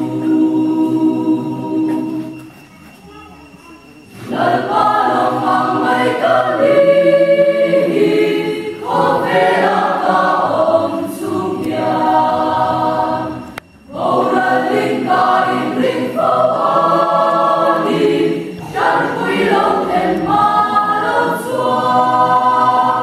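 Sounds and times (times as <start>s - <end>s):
choir singing a hymn: 0.0s - 2.6s, 4.0s - 23.0s.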